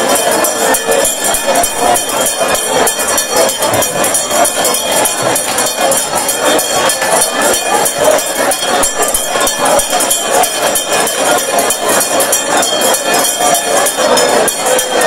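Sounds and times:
congregation voices: 0:00.0 - 0:15.0
fast drumming and hand percussion: 0:00.0 - 0:15.0.

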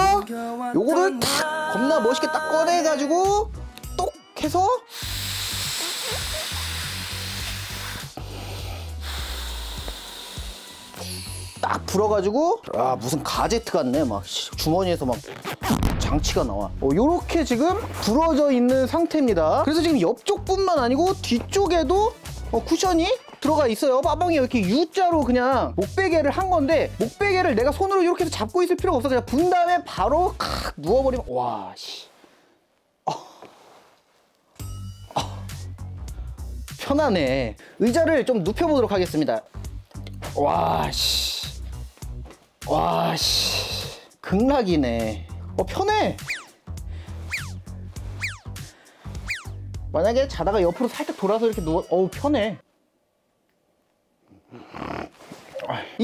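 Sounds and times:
air blown through a tube: 0:04.9 - 0:09.8.

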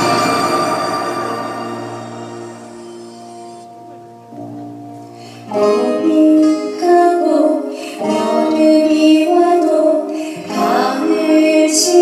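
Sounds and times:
instrumental accompaniment: 0:00.0 - 0:12.0
woman singing slow song: 0:05.5 - 0:12.0.

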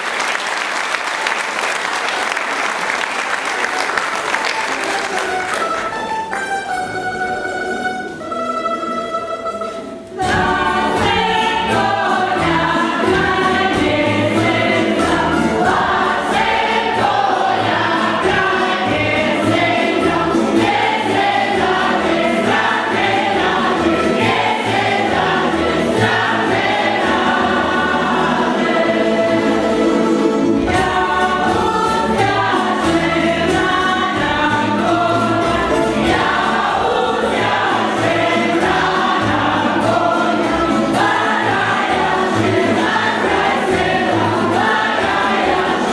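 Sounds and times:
group singing in chorus: 0:09.7 - 0:45.9.

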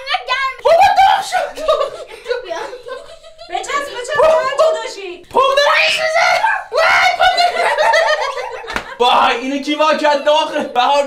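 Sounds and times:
young voice shrieking and laughing: 0:00.0 - 0:02.8, 0:05.6 - 0:08.3.

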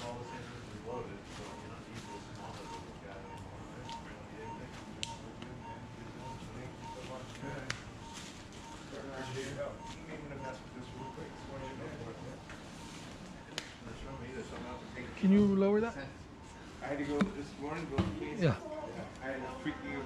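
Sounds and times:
murmured voices: 0:00.0 - 0:20.0
patient monitor beeping: 0:00.0 - 0:20.0.

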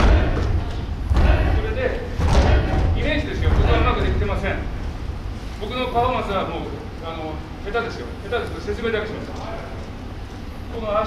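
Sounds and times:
bare feet thudding on mats: 0:00.0 - 0:04.4
steady low rumble: 0:00.0 - 0:09.2.

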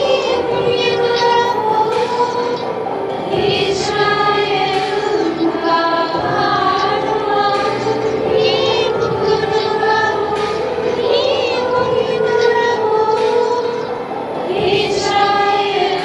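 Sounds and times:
women singing together: 0:00.0 - 0:16.0.

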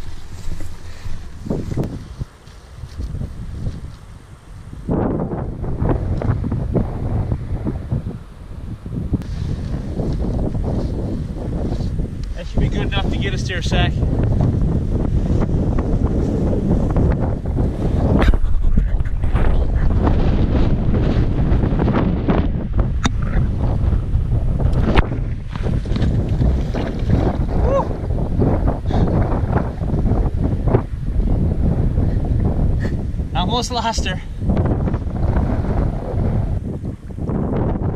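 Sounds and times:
wind buffeting microphone: 0:00.0 - 0:37.9.

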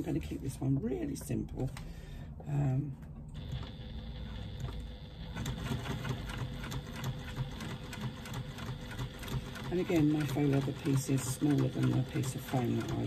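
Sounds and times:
sewing machine stitching: 0:03.4 - 0:13.0.

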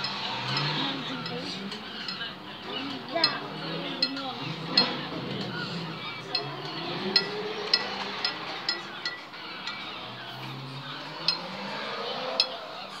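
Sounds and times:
sharp metallic clinks: 0:00.0 - 0:13.0
street and crowd murmur: 0:00.0 - 0:13.0.

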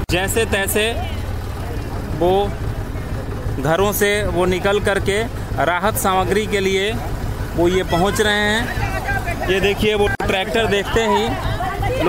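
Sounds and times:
tractor engine running: 0:00.0 - 0:12.0.

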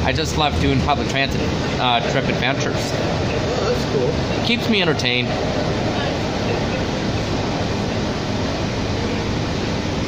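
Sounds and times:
bus engine and road noise: 0:00.0 - 0:10.0.

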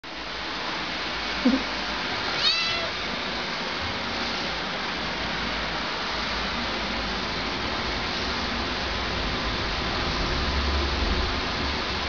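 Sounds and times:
steady background hiss: 0:00.1 - 0:12.0
cat meowing: 0:02.3 - 0:03.0.

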